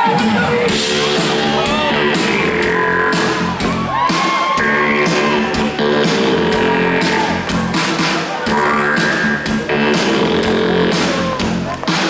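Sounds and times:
drum beat: 0.0 - 12.0
keyboards: 0.0 - 12.0.

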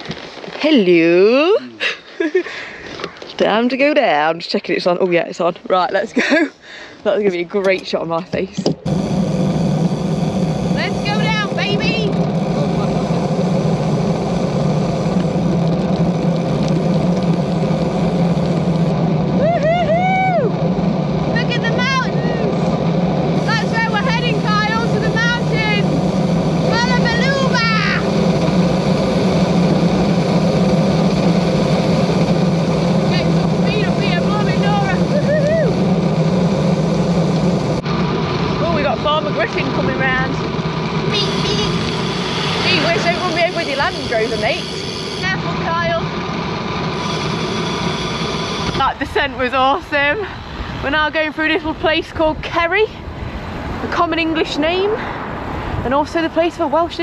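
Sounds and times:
wind roaring over microphone: 7.4 - 57.0
deep hum: 8.8 - 51.2.

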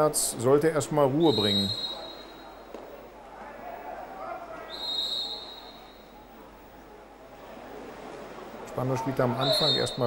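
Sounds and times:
faint distant voices: 0.0 - 10.0
referee's whistle blast: 1.2 - 2.5, 9.4 - 10.0.

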